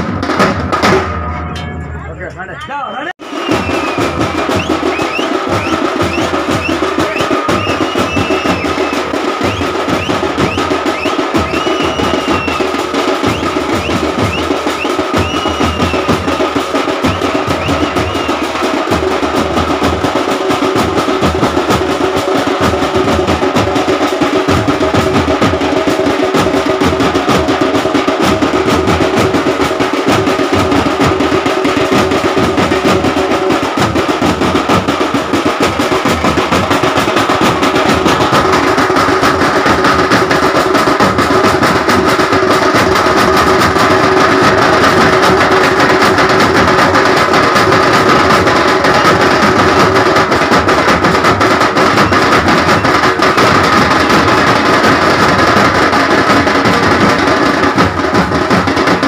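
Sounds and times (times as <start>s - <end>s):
fast dense drumming music: 0.0s - 59.0s.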